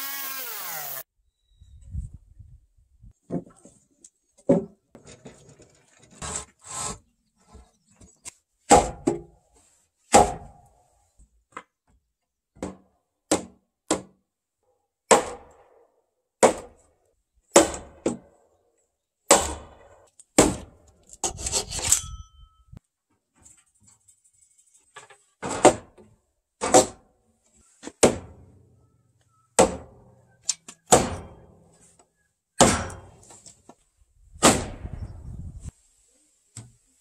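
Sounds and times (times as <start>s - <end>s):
sharp strokes on timber: 0.0s - 1.0s.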